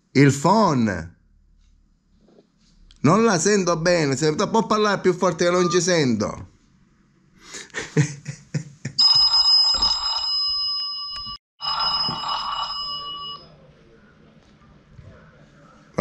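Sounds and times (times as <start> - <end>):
telephone ringing: 9.0 - 13.5.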